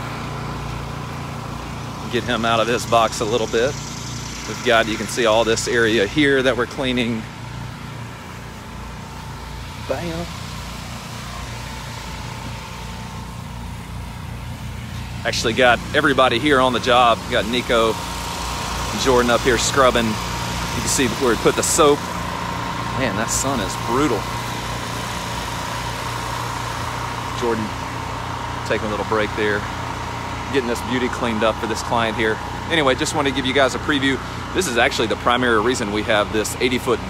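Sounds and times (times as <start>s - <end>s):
engine running steadily: 0.0s - 37.0s
thin steady whine: 0.0s - 37.0s.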